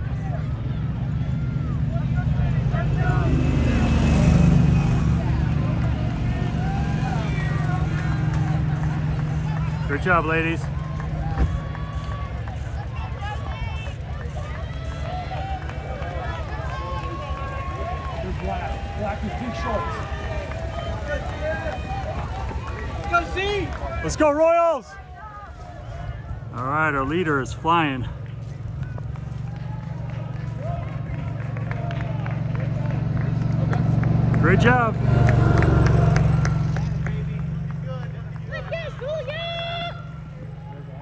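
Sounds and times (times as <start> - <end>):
spectators shouting and cheering: 0.0 - 41.0
runners' footfalls on grass: 7.6 - 34.3.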